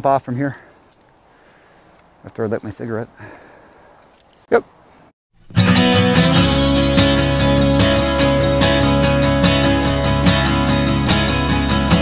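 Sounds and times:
strummed acoustic guitar music: 5.4s - 12.0s.

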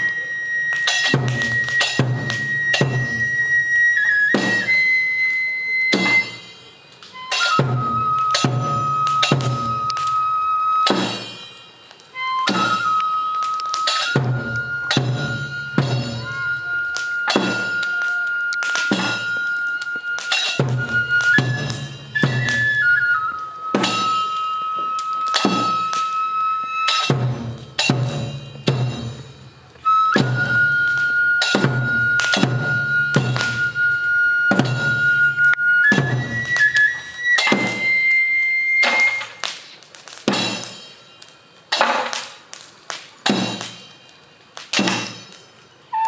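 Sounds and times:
bamboo flute long high note: 0.0s - 11.5s, 12.1s - 27.2s, 29.8s - 39.4s
ringing drum strokes: 0.8s - 3.5s, 5.9s - 22.7s, 23.7s - 24.6s, 25.2s - 26.2s, 26.8s - 33.9s, 34.5s - 42.6s, 43.2s - 46.0s
slow ringing drum strikes: 7.6s - 9.8s, 26.9s - 29.3s, 40.3s - 41.0s.

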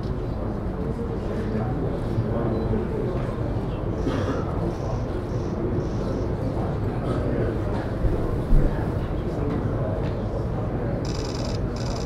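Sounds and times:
faint murmur of voices: 0.0s - 12.0s.

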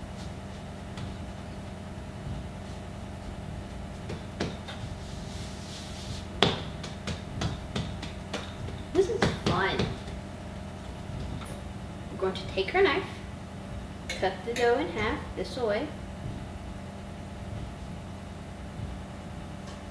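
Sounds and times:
steady low hum: 0.0s - 19.9s
hands patting dough: 0.1s - 11.7s.

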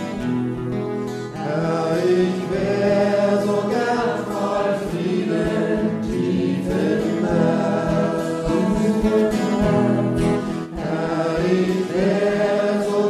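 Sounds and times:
choir singing in harmony: 1.4s - 13.0s.

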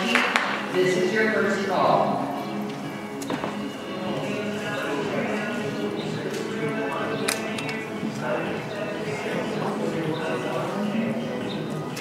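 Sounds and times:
background music in echoing arena: 0.0s - 12.0s
voices talking low: 0.0s - 12.0s.

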